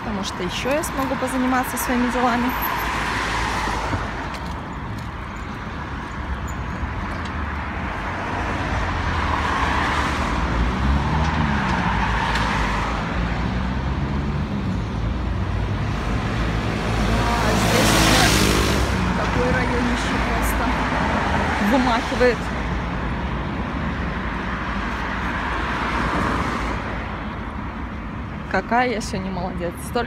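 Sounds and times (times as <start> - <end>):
road traffic rumble: 0.0 - 30.0.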